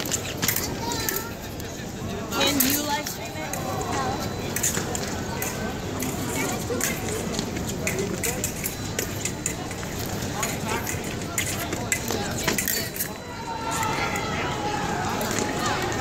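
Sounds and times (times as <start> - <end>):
voice rising above chatter: 10.2 - 16.0.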